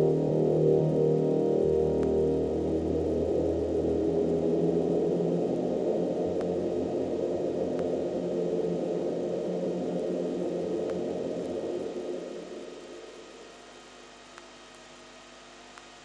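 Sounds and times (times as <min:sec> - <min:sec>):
ambient drone of low tones: 0:00.0 - 0:15.6
faint clicks: 0:14.3 - 0:14.6, 0:15.7 - 0:16.0.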